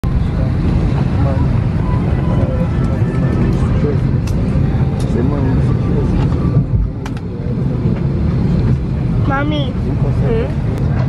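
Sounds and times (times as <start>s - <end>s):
aircraft engine rumble: 0.0s - 11.0s
faint voices: 0.0s - 11.0s.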